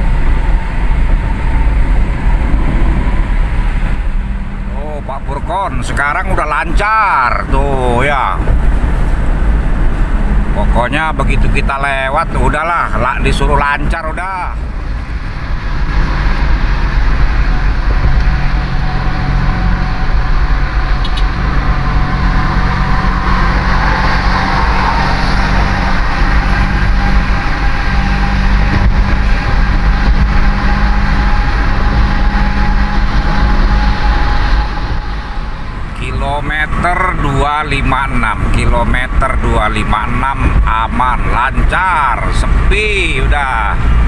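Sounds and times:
car road and engine drone: 0:00.0 - 0:44.0.

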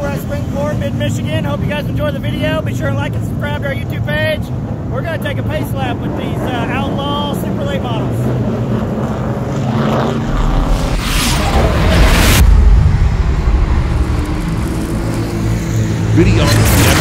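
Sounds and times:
race car engines rumbling: 0:00.0 - 0:17.0
rushing whoosh: 0:08.3 - 0:17.0.

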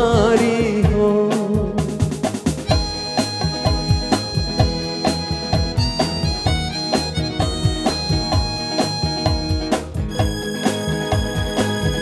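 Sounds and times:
live band playing: 0:00.0 - 0:12.0
steady drum beat: 0:00.0 - 0:12.0.

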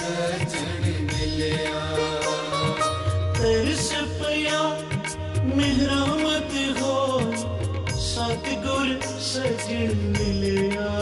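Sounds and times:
devotional chant singing: 0:00.0 - 0:11.0.

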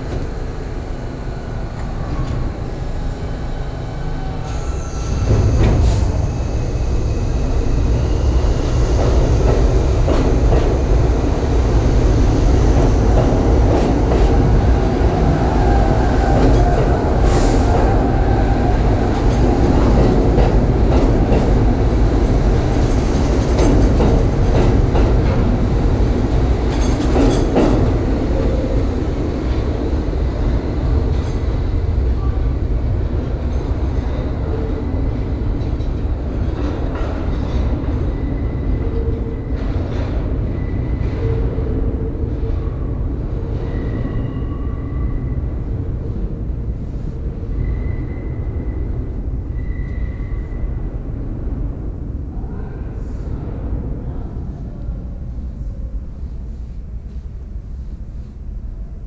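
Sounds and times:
subway train running past: 0:00.0 - 0:59.0.

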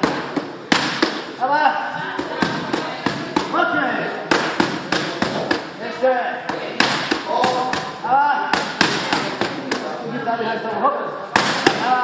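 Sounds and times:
boxing gloves smacking mitts: 0:00.0 - 0:01.3, 0:08.6 - 0:09.9.

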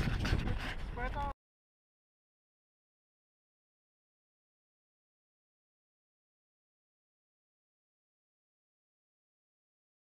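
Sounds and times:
wind buffeting microphone: 0:00.0 - 0:01.3.

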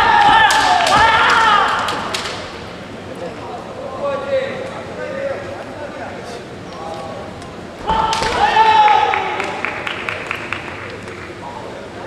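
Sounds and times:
hall background murmur: 0:00.0 - 0:12.0.

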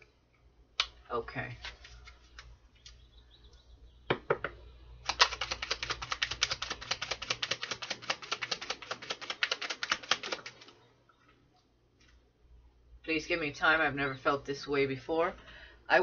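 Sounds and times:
cards being shuffled: 0:01.6 - 0:03.0, 0:05.0 - 0:10.7.

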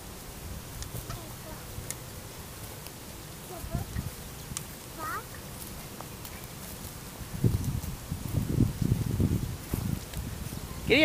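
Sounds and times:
hooves thudding on dirt: 0:00.7 - 0:11.0
footsteps on dirt: 0:00.8 - 0:11.0.

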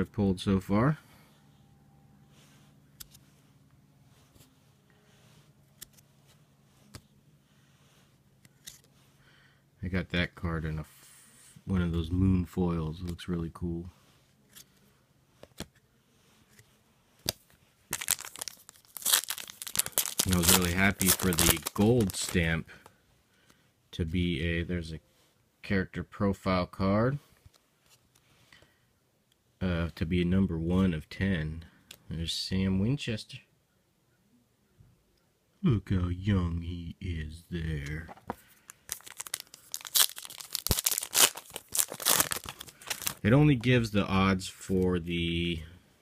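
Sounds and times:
foil pack crinkling and tearing: 0:17.3 - 0:22.5, 0:38.6 - 0:43.4.

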